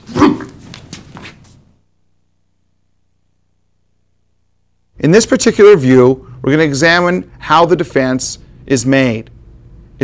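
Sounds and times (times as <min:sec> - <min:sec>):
man shouting: 0:00.1 - 0:00.6.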